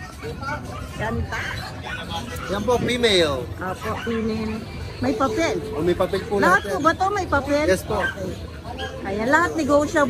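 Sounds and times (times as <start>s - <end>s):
dog barking: 0.0s - 4.7s, 7.9s - 9.5s.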